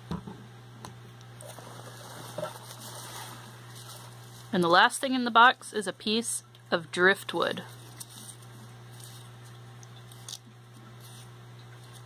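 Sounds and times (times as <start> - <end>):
steady low hum: 0.0 - 12.0
hands rummaging through shredded paper: 1.4 - 4.9.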